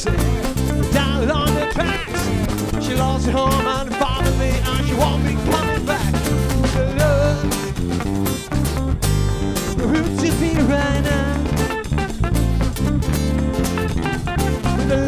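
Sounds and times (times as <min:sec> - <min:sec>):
electric bass line: 0:00.0 - 0:15.0
guitar: 0:00.0 - 0:15.0
steady drum beat: 0:00.0 - 0:15.0.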